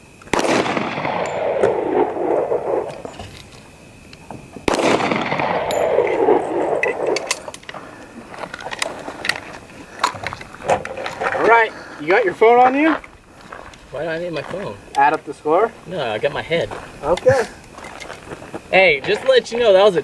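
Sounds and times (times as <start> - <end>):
pistol shots with echo: 0.3 - 3.0, 4.6 - 7.3
footsteps on gravel: 7.6 - 19.7.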